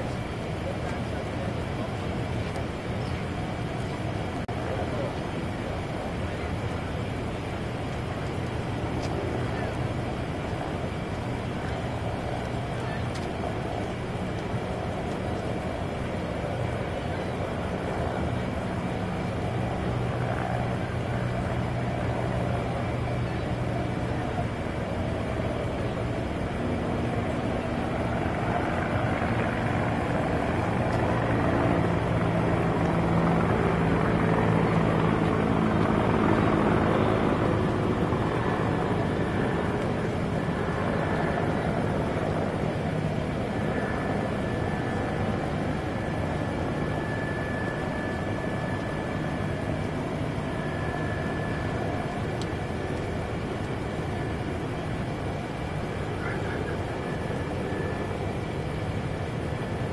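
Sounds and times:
aircraft engine passing: 0:00.0 - 0:59.9
steady rushing noise: 0:00.0 - 0:59.9.

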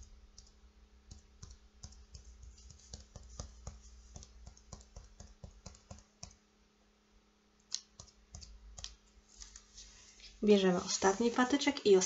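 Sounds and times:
cotton swab tapping paper: 0:01.1 - 0:06.4.

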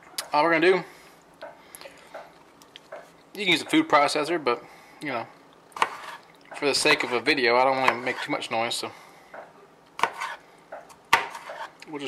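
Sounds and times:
knife chopping on plastic board: 0:05.8 - 0:06.2, 0:07.8 - 0:08.2, 0:10.0 - 0:11.7.

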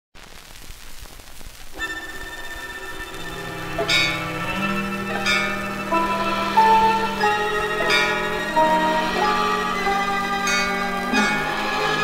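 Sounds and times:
record surface hiss and crackle: 0:00.2 - 0:12.0
bright struck accents: 0:01.8 - 0:12.0
dance orchestra playing: 0:01.8 - 0:12.0.

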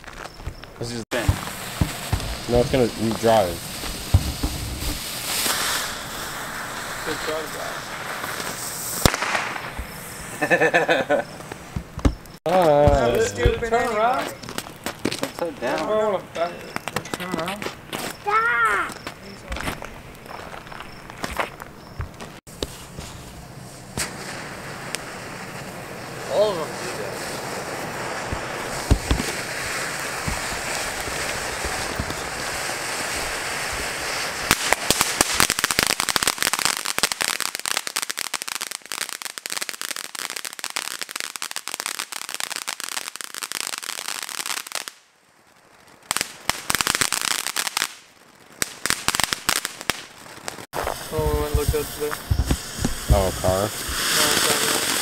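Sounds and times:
firework spraying sparks: 0:00.0 - 0:21.7, 0:22.4 - 0:55.0.

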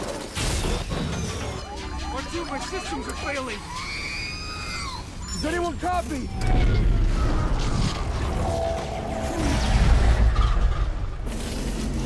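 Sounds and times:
robot electronic shriek: 0:01.1 - 0:10.5.

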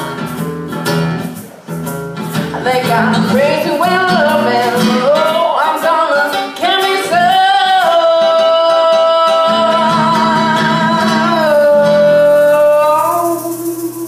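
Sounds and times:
acoustic guitar strumming: 0:00.0 - 0:14.0
woman singing: 0:02.4 - 0:14.0.

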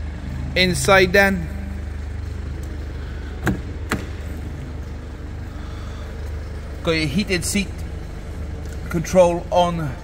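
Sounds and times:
low hum: 0:00.0 - 0:10.0
car door latch clicks: 0:03.4 - 0:04.3.

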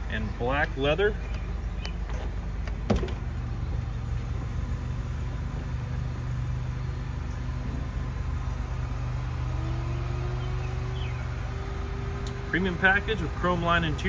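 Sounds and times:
low mechanical hum: 0:00.0 - 0:14.0.

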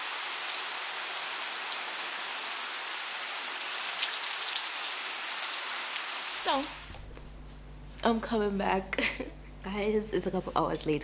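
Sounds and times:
rain falling: 0:00.0 - 0:06.9.

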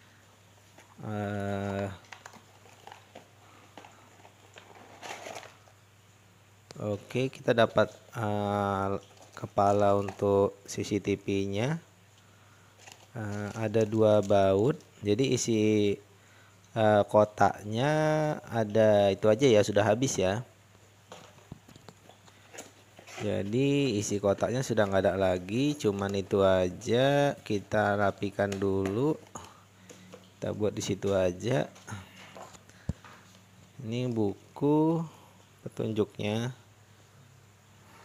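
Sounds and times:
plastic rustle: 0:00.6 - 0:05.8, 0:07.1 - 0:11.1, 0:12.6 - 0:15.5, 0:21.0 - 0:33.4.

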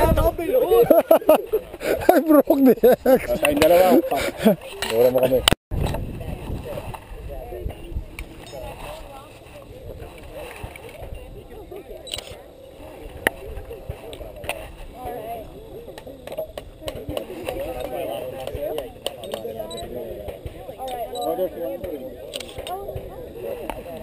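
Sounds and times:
indistinct talk of people: 0:00.0 - 0:24.0.

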